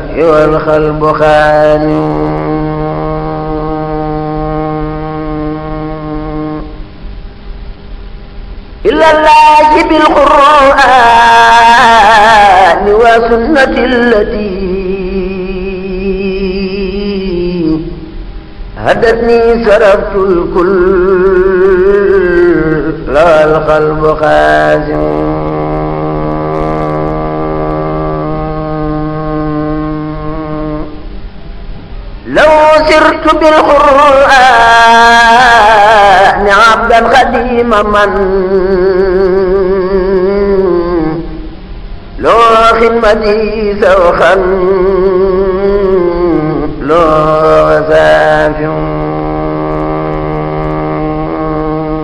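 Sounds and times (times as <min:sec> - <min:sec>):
man chanting a long note: 0:00.0 - 0:06.8, 0:18.8 - 0:31.1, 0:42.2 - 0:52.0
lead singer singing: 0:08.8 - 0:18.2, 0:18.8 - 0:31.0, 0:32.2 - 0:41.5, 0:42.2 - 0:52.0.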